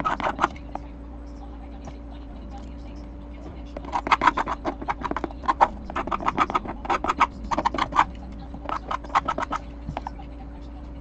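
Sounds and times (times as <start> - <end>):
hand tool scratching plastic: 0.0 - 0.6, 3.8 - 10.1.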